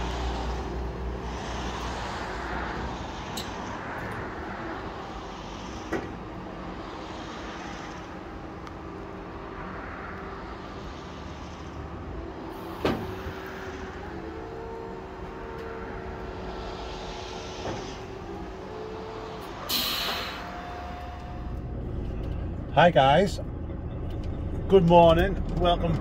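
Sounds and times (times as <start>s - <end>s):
hydraulic system humming: 0.0s - 22.7s
burst of hiss: 19.6s - 20.6s.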